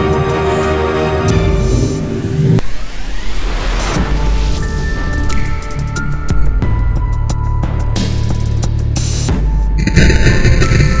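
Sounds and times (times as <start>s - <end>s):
background music: 0.0s - 2.6s, 3.8s - 11.0s
rushing noise: 9.8s - 11.0s.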